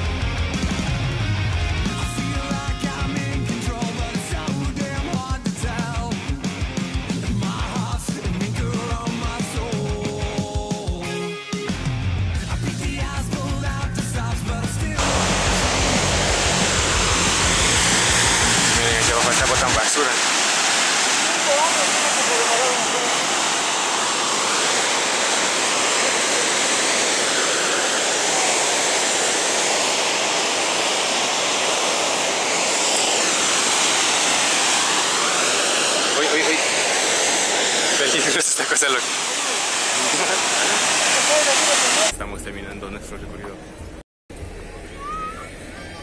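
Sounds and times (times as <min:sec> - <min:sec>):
heavy rock music: 0:00.0 - 0:20.8
waterfall rushing: 0:15.0 - 0:42.1.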